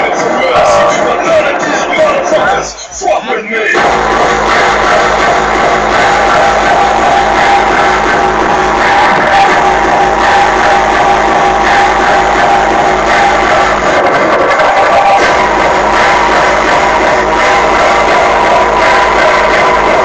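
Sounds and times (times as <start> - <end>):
loud electronic dance music: 0.0 - 20.0.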